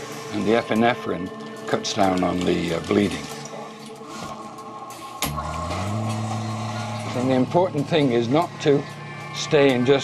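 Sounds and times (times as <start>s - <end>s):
suction pump motor hum: 5.2s - 9.7s.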